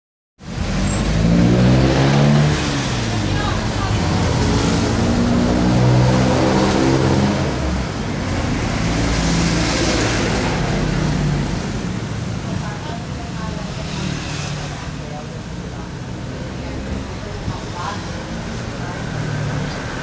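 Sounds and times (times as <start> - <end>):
indistinct talking: 2.6 - 8.3, 10.0 - 20.0.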